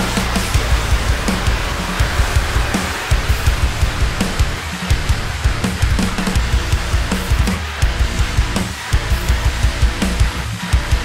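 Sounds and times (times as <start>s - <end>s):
cymbals crashing: 0.0s - 10.9s
rock band track with guitars: 0.0s - 11.0s.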